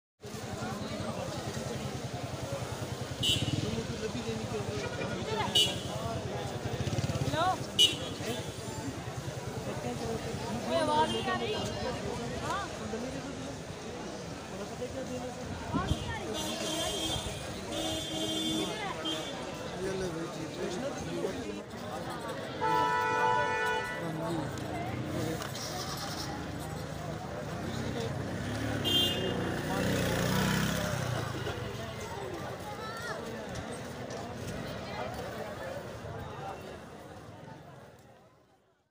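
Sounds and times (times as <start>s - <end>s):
crowd voices: 0.2s - 38.9s.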